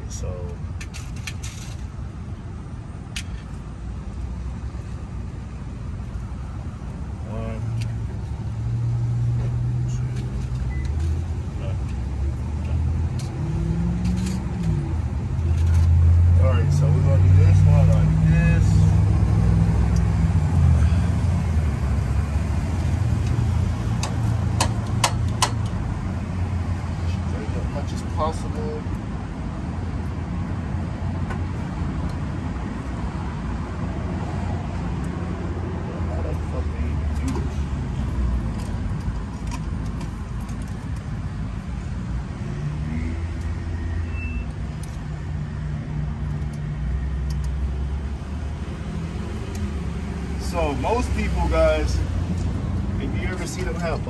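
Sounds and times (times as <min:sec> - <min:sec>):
metallic clicks of screws and wrench: 0:46.3 - 0:47.6.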